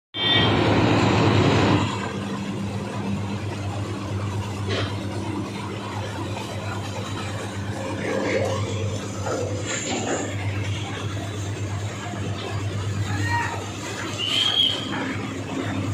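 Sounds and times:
machinery humming: 0.2s - 15.9s.

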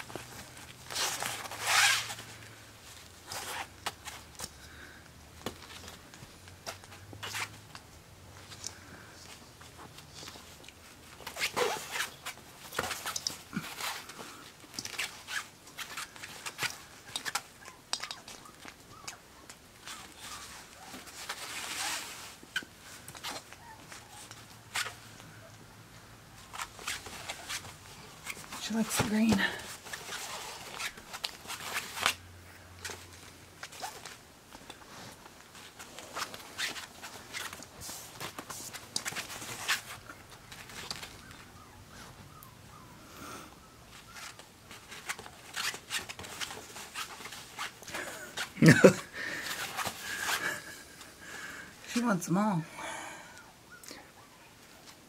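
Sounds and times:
puppy rustling baubles: 8.3s - 25.6s, 26.3s - 43.0s, 43.6s - 51.1s.

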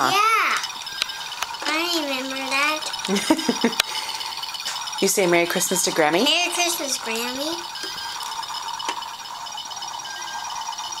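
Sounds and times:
electronic hum: 0.0s - 11.0s
fast pulsing high beep: 0.0s - 11.0s.

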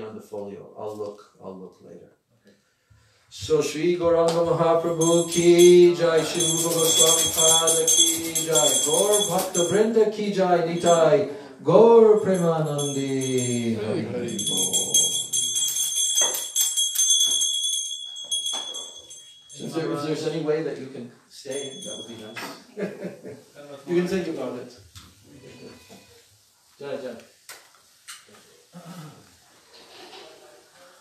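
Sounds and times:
small metal bells ringing: 4.6s - 11.3s, 12.0s - 20.5s, 21.4s - 22.6s.

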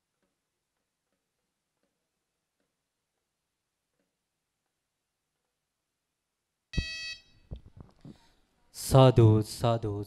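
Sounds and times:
short electronic beep: 6.8s - 7.4s.

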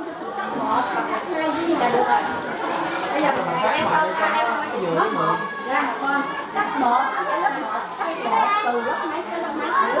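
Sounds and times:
group chattering: 0.0s - 10.0s.

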